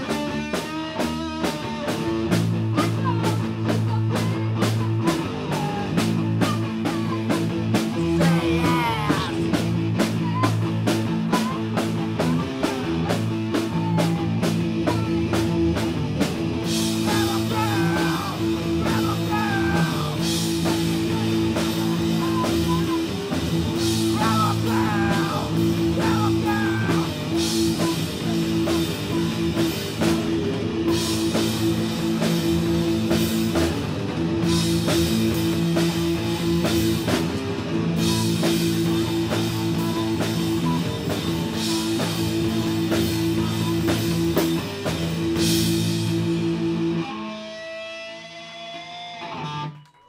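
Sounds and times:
live rock band playing: 0:00.0 - 0:50.0.

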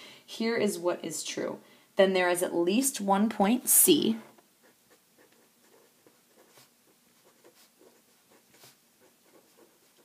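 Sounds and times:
pen scratching on paper: 0:04.3 - 0:10.0.

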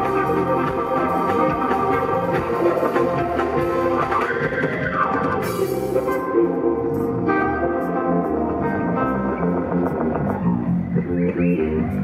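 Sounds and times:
bass guitar: 0:00.0 - 0:12.0
drum kit: 0:00.0 - 0:12.0
electric guitar: 0:00.0 - 0:12.0
keyboards: 0:00.0 - 0:12.0.

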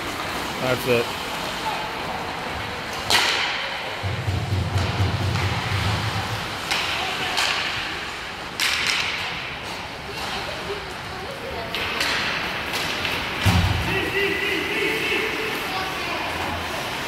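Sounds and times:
hockey stick striking puck: 0:03.0 - 0:09.8, 0:11.7 - 0:13.9.

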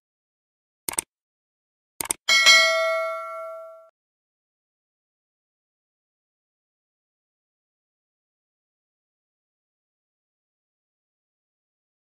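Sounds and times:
mouse clicks: 0:00.9 - 0:01.1, 0:02.0 - 0:02.2
notification bell ding: 0:02.3 - 0:03.9.

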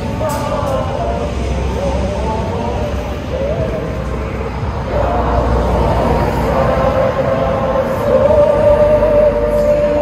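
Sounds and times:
people singing held notes: 0:00.0 - 0:10.0.

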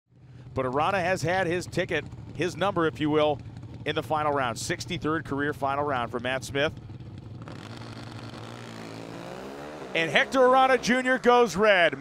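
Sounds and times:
racing motorcycles accelerating: 0:05.9 - 0:12.0.

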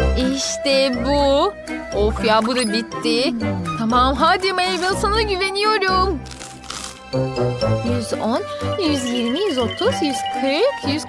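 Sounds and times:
background music: 0:00.0 - 0:11.0
crunching potato chip: 0:06.2 - 0:07.2.

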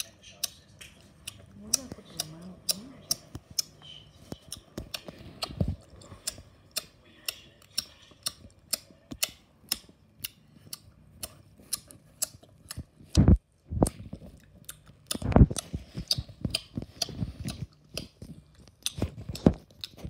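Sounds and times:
loud open-mouthed chewing: 0:00.0 - 0:13.0, 0:13.8 - 0:20.0.

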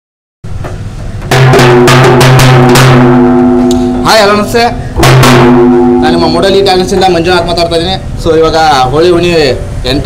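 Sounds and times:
frame drum beaten with stick: 0:01.2 - 0:07.6
steady ringing tone: 0:01.5 - 0:08.3.

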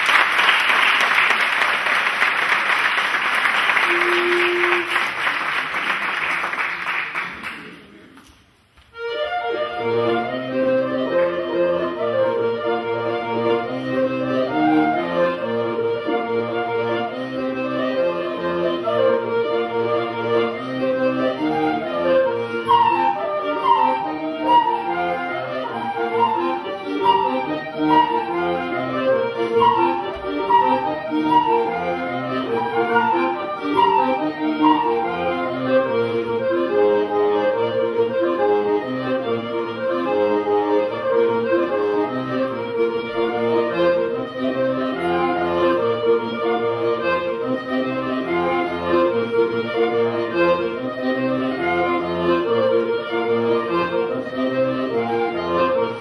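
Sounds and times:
accordion: 0:00.0 - 0:07.3, 0:08.8 - 0:56.0
flute: 0:03.8 - 0:05.1, 0:20.9 - 0:36.7, 0:43.2 - 0:48.9, 0:53.6 - 0:56.0
bagpipes: 0:09.0 - 0:56.0.

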